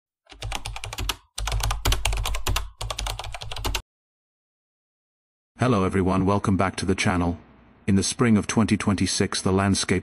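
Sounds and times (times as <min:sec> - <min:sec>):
computer keyboard typing: 0:00.3 - 0:03.8.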